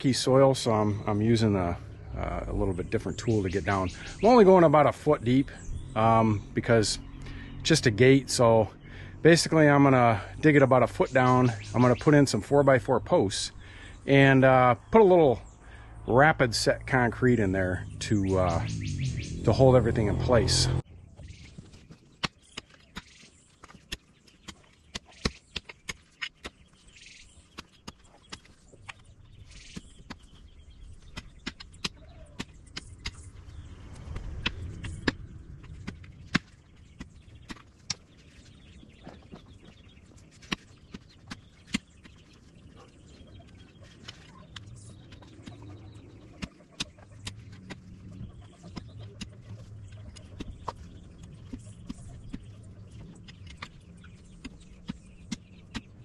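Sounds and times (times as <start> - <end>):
low rumble: 0.0 - 21.2, 32.9 - 37.6.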